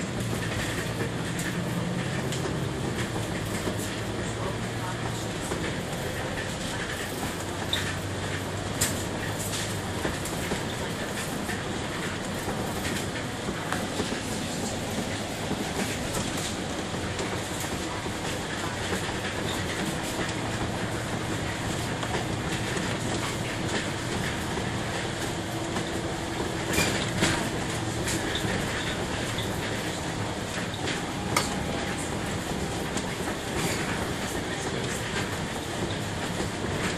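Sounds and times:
bodywork rattles and clicks: 0:00.0 - 0:36.9
bus engine and road noise: 0:00.0 - 0:36.9.

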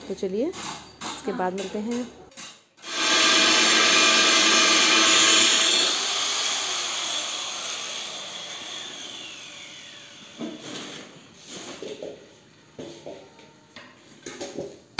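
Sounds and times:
angle grinder whining: 0:02.8 - 0:11.3.

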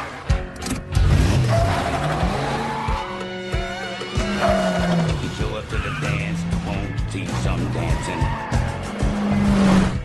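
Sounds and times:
music: 0:00.0 - 0:10.0
truck driving on dirt road: 0:00.0 - 0:10.0
tires skidding: 0:04.2 - 0:10.0.

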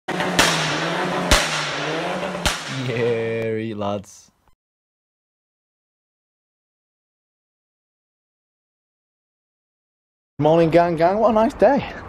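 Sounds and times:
sharp cracks: 0:00.1 - 0:03.1
loud rushing noise: 0:00.1 - 0:03.3.

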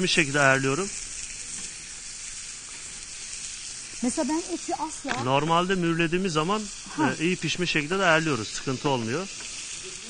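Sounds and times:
steaks sizzling in a pan: 0:00.0 - 0:10.0.

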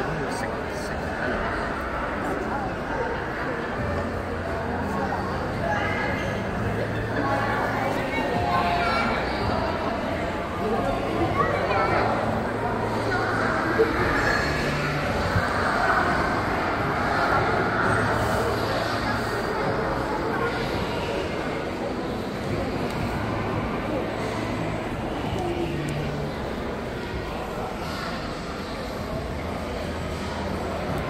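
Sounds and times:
busy indoor public space hum: 0:00.0 - 0:31.0.

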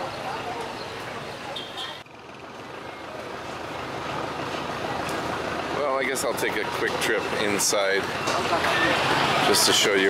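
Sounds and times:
faint indistinct voices: 0:00.0 - 0:10.0
traffic hum: 0:00.0 - 0:10.0.

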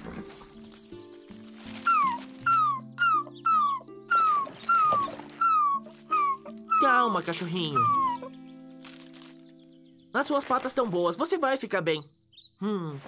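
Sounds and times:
soft background music: 0:00.0 - 0:12.6
puppy whimpering: 0:01.8 - 0:08.3.

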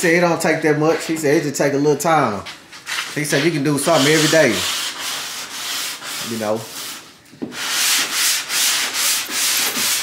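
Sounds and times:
sanding car body panel: 0:07.6 - 0:10.0.

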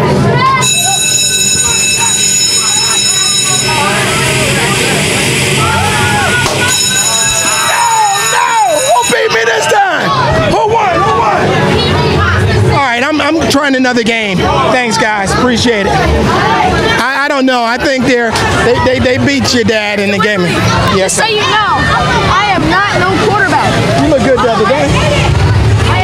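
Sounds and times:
high-pitched electronic tone: 0:00.5 - 0:10.2.

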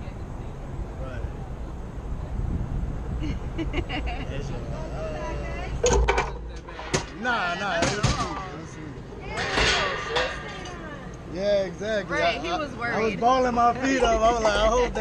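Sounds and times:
steady low rumble: 0:00.0 - 0:07.8
people's voices: 0:00.0 - 0:15.0
sharp clunks: 0:05.8 - 0:07.2.

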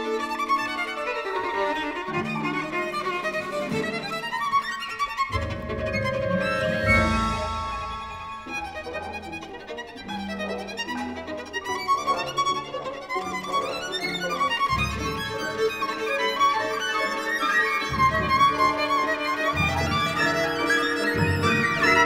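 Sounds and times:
orchestra: 0:00.0 - 0:22.0
solo violin playing high figures: 0:00.0 - 0:22.0.

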